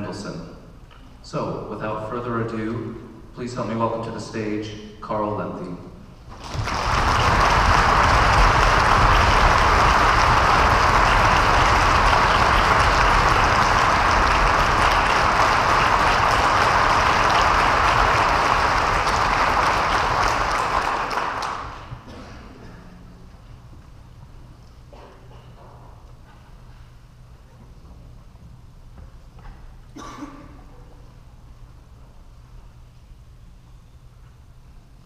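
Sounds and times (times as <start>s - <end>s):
audience applauding: 6.3s - 22.0s.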